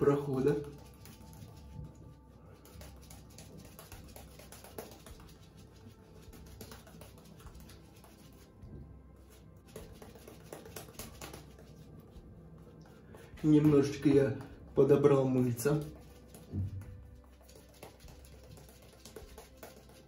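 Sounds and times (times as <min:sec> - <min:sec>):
shaving brush strokes on skin: 0:00.2 - 0:08.5, 0:15.5 - 0:20.0.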